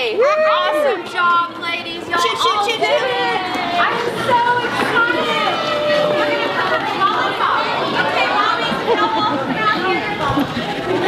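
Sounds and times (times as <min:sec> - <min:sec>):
people talking at once: 0:00.0 - 0:11.0
children's voices: 0:00.8 - 0:11.0.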